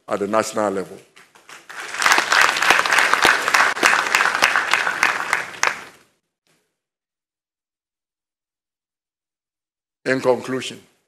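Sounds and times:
audience applauding: 1.4s - 6.1s.

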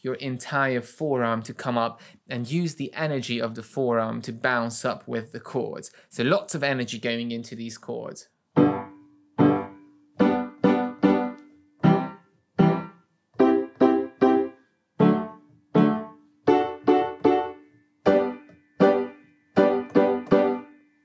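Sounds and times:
piano staccato chords: 8.6s - 20.7s.

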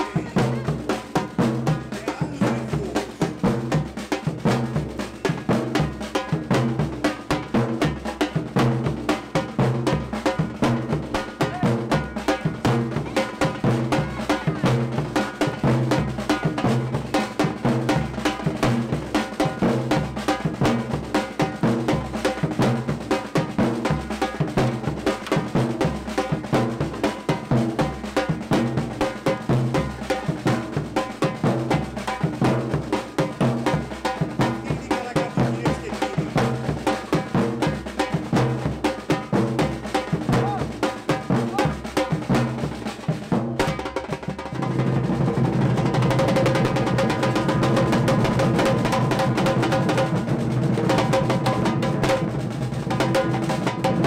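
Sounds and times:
street percussion band drumming: 0.0s - 54.0s.

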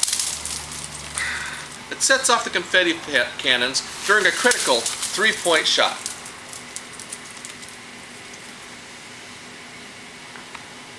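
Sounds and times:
paper confetti pattering down: 0.0s - 1.8s, 3.8s - 8.6s
confetti cannon firing: 4.0s - 7.4s.

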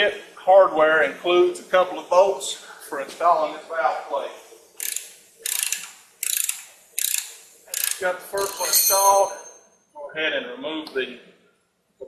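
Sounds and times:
ratchet wrench clicking: 4.8s - 9.1s.

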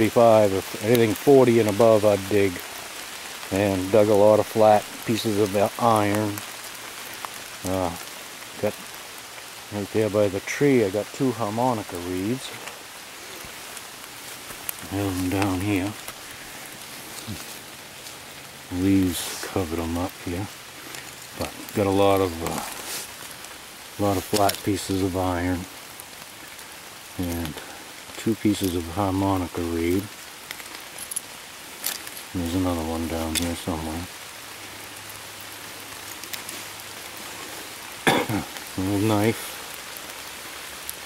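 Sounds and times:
light rain on leaves: 0.0s - 41.0s
man's voice: 3.5s - 6.4s, 14.8s - 16.0s, 21.4s - 22.8s, 24.0s - 25.7s, 32.4s - 34.1s, 38.8s - 39.6s.

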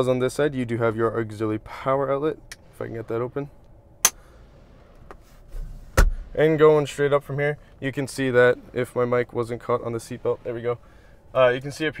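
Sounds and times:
microphone knock: 6.0s - 6.2s.

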